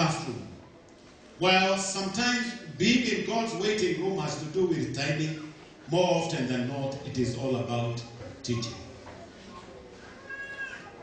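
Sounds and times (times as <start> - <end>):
low room noise: 0.0 - 11.0
faint high-pitched vocal call: 9.5 - 11.0.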